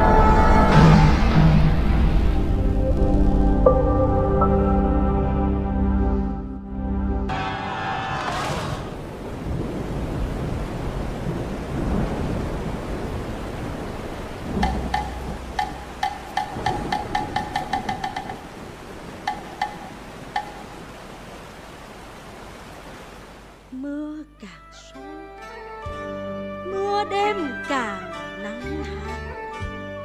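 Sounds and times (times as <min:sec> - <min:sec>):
rain: 0:08.1 - 0:24.3
rumbling thunder: 0:08.2 - 0:21.0
sharp pitched percussion strikes: 0:14.6 - 0:18.6.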